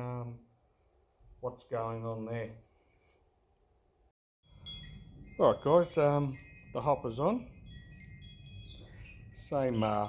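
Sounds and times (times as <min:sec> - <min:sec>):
low outdoor background: 0:00.0 - 0:10.0
faint high chiming tones: 0:04.4 - 0:10.0.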